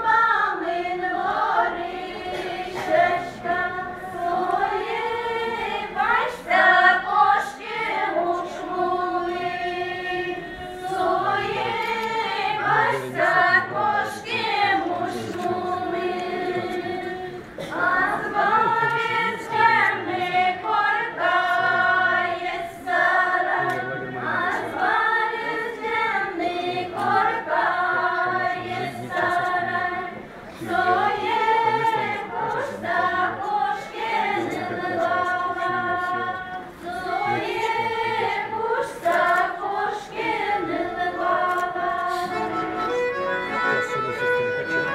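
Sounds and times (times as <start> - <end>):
women singing unaccompanied: 0.0 - 42.4.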